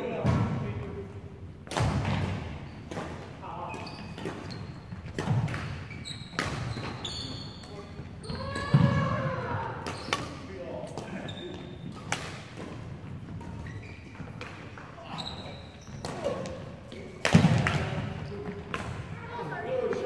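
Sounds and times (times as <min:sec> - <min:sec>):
rackets hitting shuttlecock: 0:04.2 - 0:07.0, 0:09.8 - 0:15.0, 0:15.9 - 0:19.1.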